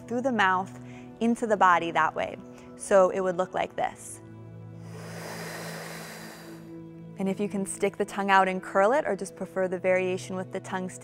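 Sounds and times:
soft background music: 0.0s - 11.0s
hissing in-breath through mouth: 4.8s - 6.8s.

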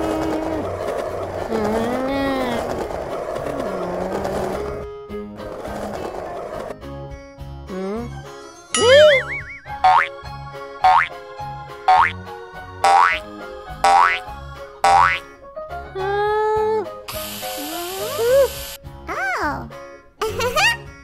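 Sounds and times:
children's background music: 1.2s - 21.0s
cartoon wobbling boing: 8.8s - 10.1s, 11.9s - 12.1s, 14.9s - 15.2s
hissing burst: 17.1s - 18.8s.

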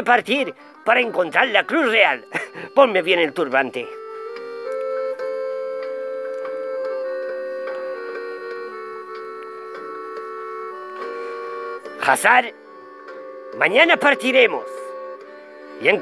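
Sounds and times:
slow keyboard chords: 0.0s - 16.0s.

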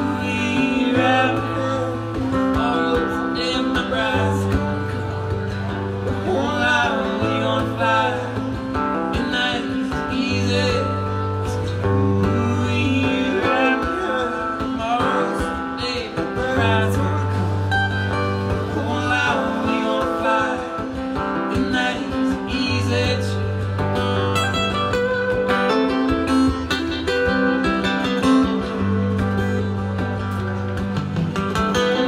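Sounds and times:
acoustic guitars strumming chords: 0.0s - 32.0s
wavering guitar melody: 0.0s - 32.0s.

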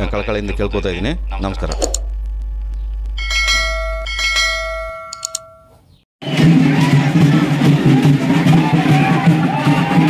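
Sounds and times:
low hum: 0.0s - 5.7s
small bell ringing: 3.2s - 5.8s
short clicks: 5.1s - 5.5s.

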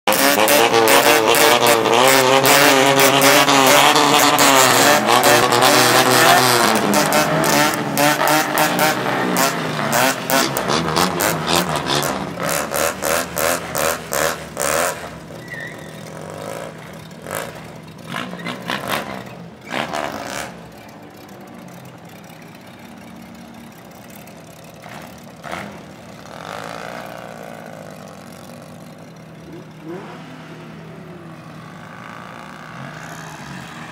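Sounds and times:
car engines revving: 0.0s - 33.9s.

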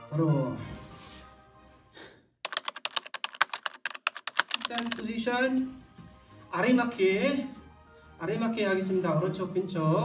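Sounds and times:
background music: 0.0s - 3.0s, 4.2s - 10.0s
rapid keyboard typing clicks: 2.4s - 5.2s.

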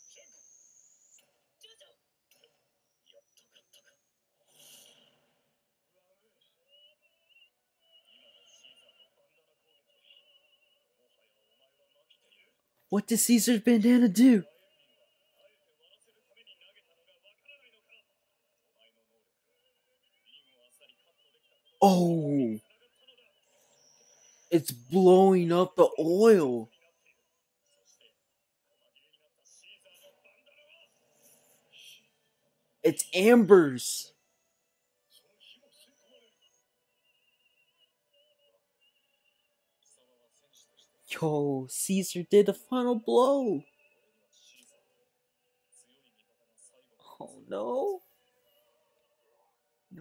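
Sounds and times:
faint distant voice talking: 27.7s - 32.1s.

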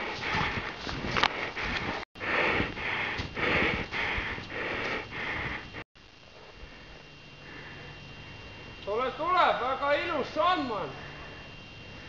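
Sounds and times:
footsteps crunching in snow: 0.0s - 5.1s
outdoor background hiss: 0.0s - 12.0s.

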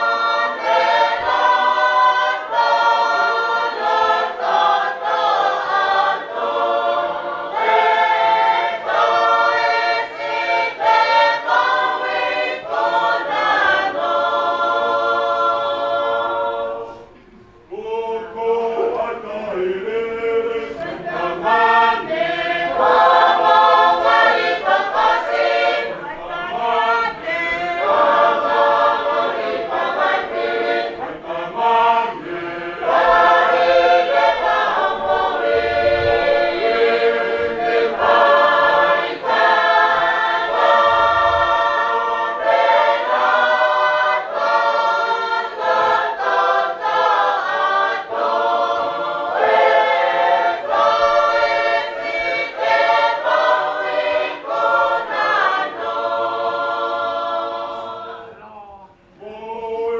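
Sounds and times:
choir singing hymn unaccompanied: 0.0s - 59.9s.

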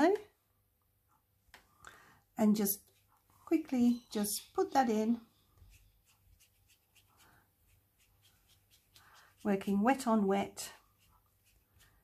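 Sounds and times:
paintbrush brushing on paper: 2.6s - 3.7s, 5.5s - 12.0s.

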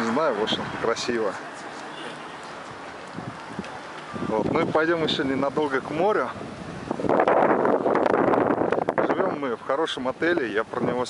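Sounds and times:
wind on microphone: 0.4s - 0.9s, 2.5s - 9.7s.

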